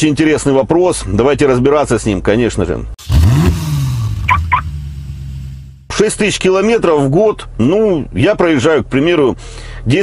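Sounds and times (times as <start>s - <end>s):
car engine revving: 3.0s - 5.8s
short high beeps: 4.2s - 4.7s.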